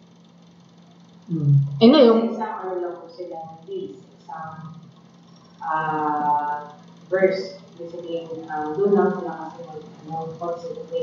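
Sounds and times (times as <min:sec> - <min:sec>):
man saying uhh: 0:01.3 - 0:01.6.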